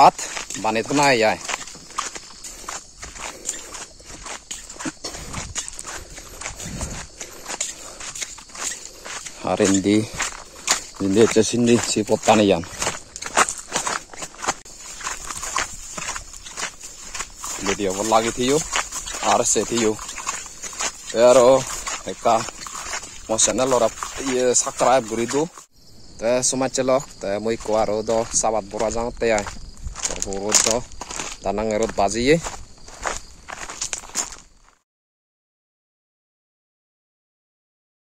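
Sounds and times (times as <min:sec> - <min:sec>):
man speaking: 0:00.0 - 0:01.5, 0:09.4 - 0:10.3, 0:11.0 - 0:13.0, 0:17.5 - 0:20.0, 0:21.1 - 0:22.5, 0:23.3 - 0:25.6, 0:26.2 - 0:32.5
footsteps on pavement: 0:00.0 - 0:25.7, 0:26.8 - 0:34.8.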